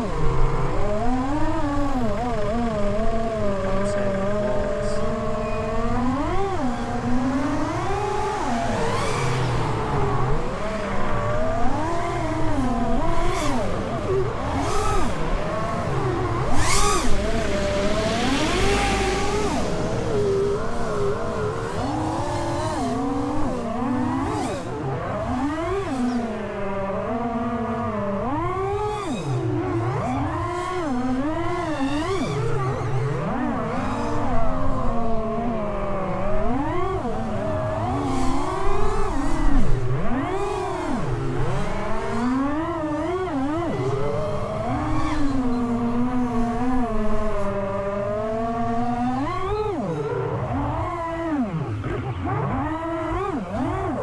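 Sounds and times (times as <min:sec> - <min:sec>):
quadcopter motor and propeller whine: 0:00.0 - 0:54.0.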